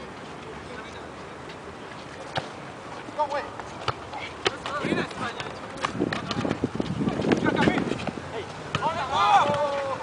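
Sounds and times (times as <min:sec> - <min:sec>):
steady outdoor hiss: 0:00.0 - 0:10.0
football kicked on concrete: 0:03.8 - 0:09.7.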